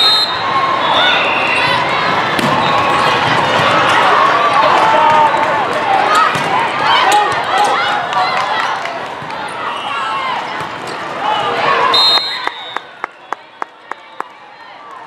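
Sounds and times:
players and spectators shouting: 0.0s - 13.0s
volleyball hits: 2.3s - 3.9s.

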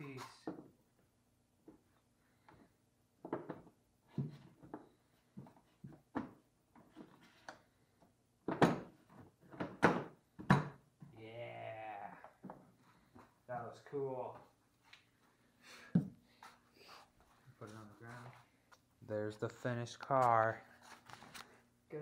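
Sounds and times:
person speaking: 0.0s - 0.5s, 17.5s - 20.9s.

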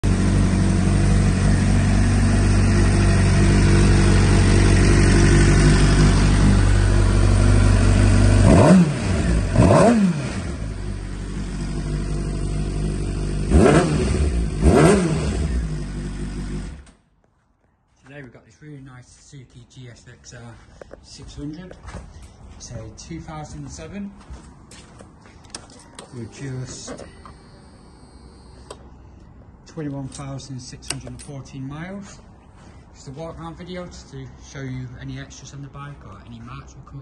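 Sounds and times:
motorcycle engine idling: 0.0s - 9.6s, 10.4s - 13.5s, 15.3s - 16.8s.

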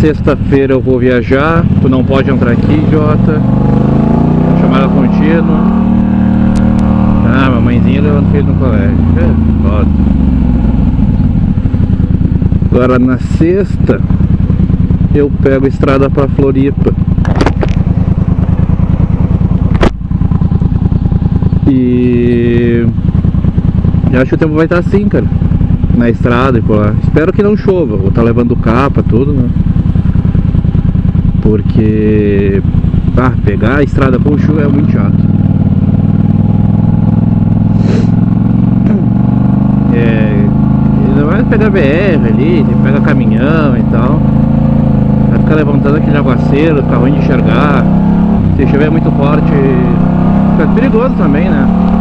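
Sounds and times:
motorcycle engine at low revs: 0.0s - 52.0s.

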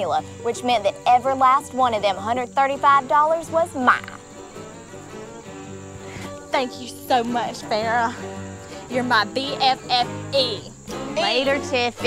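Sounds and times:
crickets chirping: 0.0s - 12.0s
soft background music chord: 0.0s - 12.0s.

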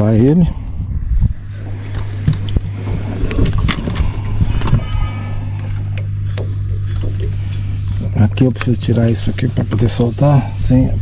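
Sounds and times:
boat motor humming: 0.0s - 11.0s.

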